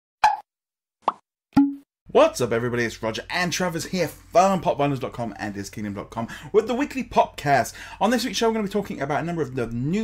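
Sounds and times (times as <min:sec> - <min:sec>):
cartoon pop sound effects: 0:00.2 - 0:00.4, 0:01.0 - 0:01.8.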